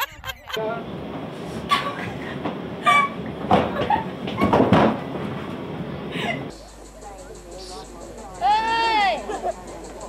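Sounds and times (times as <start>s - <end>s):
people laughing: 0.0s - 0.9s, 1.6s - 4.9s, 6.1s - 6.5s, 8.8s - 10.0s
train car rumbling and rattling: 0.0s - 10.0s.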